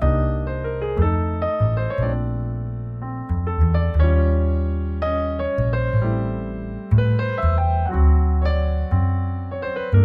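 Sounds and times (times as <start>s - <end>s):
piano music: 0.0s - 10.0s.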